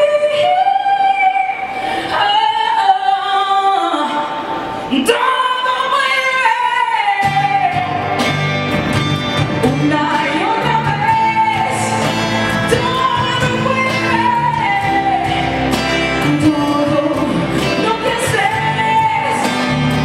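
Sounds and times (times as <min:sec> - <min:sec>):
woman singing: 0:00.0 - 0:08.1, 0:09.5 - 0:20.0
acoustic guitar: 0:00.0 - 0:20.0
bass: 0:07.2 - 0:20.0.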